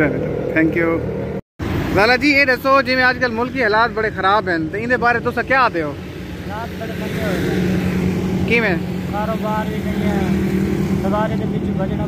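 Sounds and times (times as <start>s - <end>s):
vehicle engine running: 3.0s - 12.0s.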